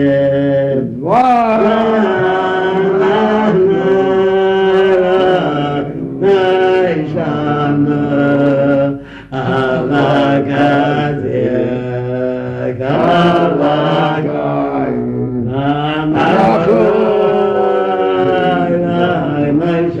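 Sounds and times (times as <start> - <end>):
slow chanted melody: 0.0 - 20.0.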